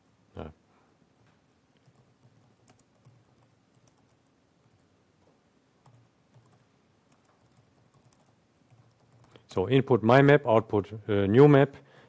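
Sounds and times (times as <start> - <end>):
soft keyboard typing: 1.7 - 9.5.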